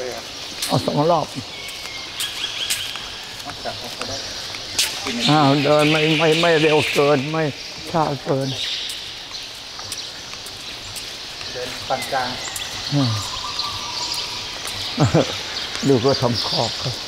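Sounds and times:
man speaking: 0:00.0 - 0:01.5, 0:03.4 - 0:08.6, 0:11.4 - 0:13.4, 0:15.0 - 0:17.0
high-pitched background hiss: 0:00.0 - 0:17.0.

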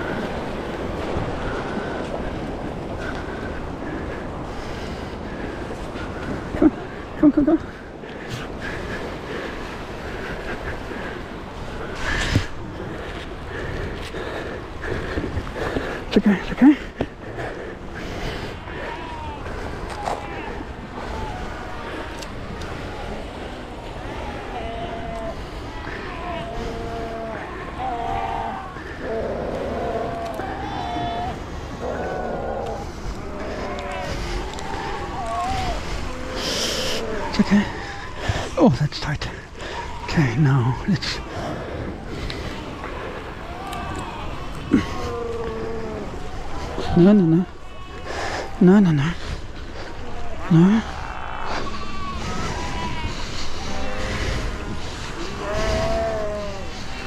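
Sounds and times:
seals calling: 0:00.0 - 0:57.0
surf: 0:00.0 - 0:57.0
wind on microphone: 0:49.3 - 0:57.0.

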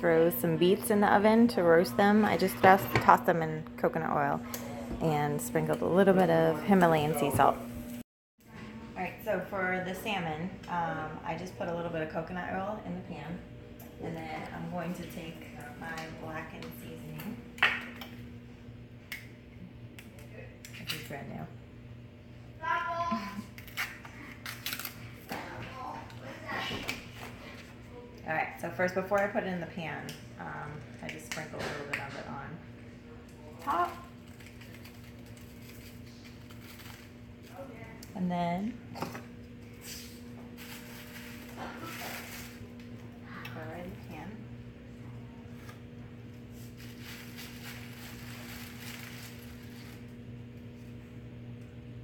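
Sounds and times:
steady electrical hum: 0:00.0 - 0:52.0.

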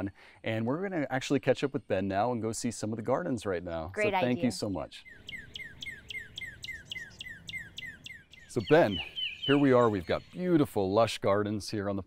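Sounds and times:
bird singing whistled notes: 0:04.4 - 0:10.8.

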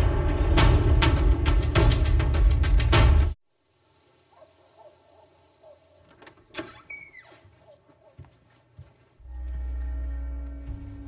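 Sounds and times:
brief falling squeak: 0:06.6 - 0:07.4
low sustained music: 0:09.2 - 0:11.0.

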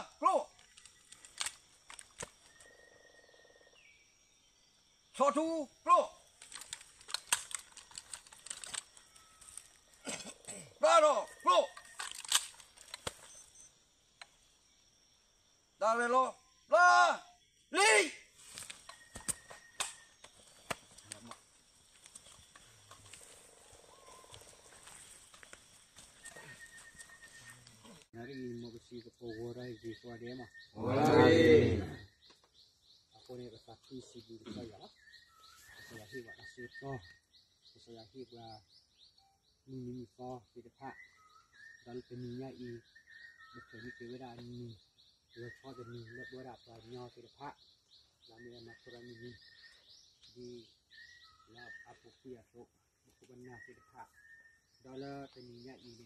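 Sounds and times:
faint outdoor hiss: 0:00.0 - 0:56.0
shouted drill commands: 0:05.2 - 0:06.2, 0:10.8 - 0:11.8, 0:15.8 - 0:18.3, 0:30.8 - 0:32.0
rifles clicking and clacking: 0:06.4 - 0:08.9, 0:11.8 - 0:13.1.

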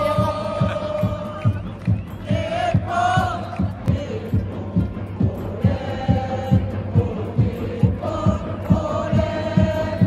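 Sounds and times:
crowd chanting in unison: 0:00.0 - 0:10.0
drum beating steady pulse: 0:00.0 - 0:10.0.

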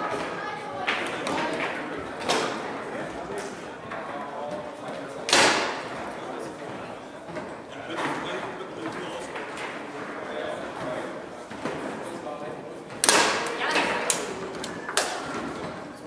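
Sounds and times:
background voices in hall: 0:00.0 - 0:16.0
sharp foosball strikes: 0:00.0 - 0:16.0.

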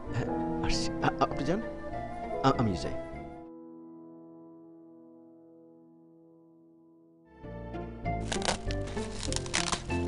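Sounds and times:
foil gift wrap tearing: 0:08.2 - 0:10.0.

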